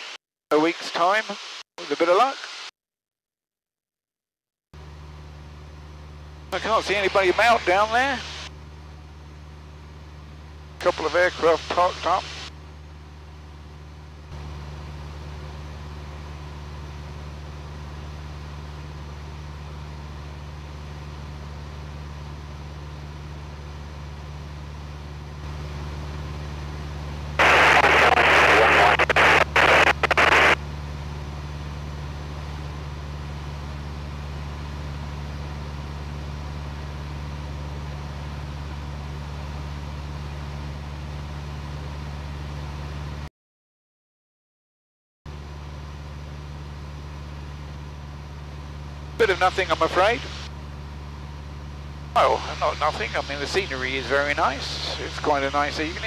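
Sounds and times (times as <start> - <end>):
light aircraft engine droning: 45.3 - 56.0.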